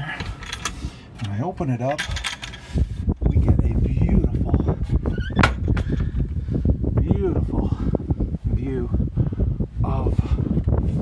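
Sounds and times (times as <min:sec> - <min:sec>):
wind buffeting microphone: 0:00.0 - 0:11.0
wooden hatch clicks and knocks: 0:05.1 - 0:06.3.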